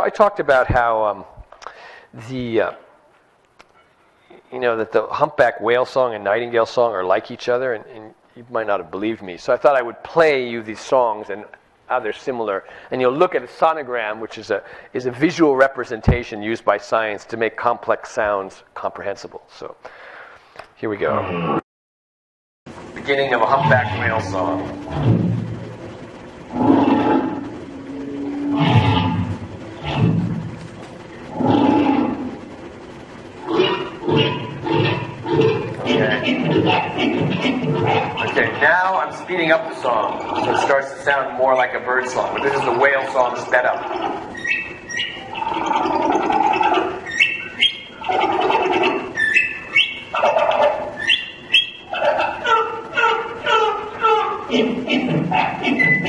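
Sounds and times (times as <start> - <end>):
whale moaning calls: 21.1 - 21.6, 23.4 - 32.6, 33.4 - 56.0
sped-up whale song whistles: 43.9 - 50.2, 50.8 - 51.9, 55.7 - 56.0.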